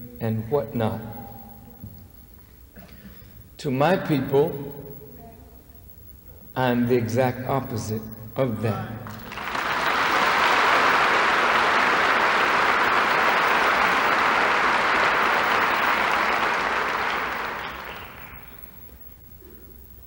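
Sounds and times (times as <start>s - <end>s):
audience applauding: 9.1s - 18.8s.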